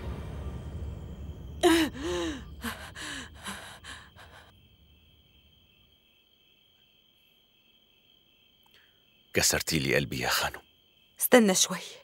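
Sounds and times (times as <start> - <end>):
crickets chirring: 0.0 - 12.0
woman breathing hard and gasping: 1.6 - 4.6.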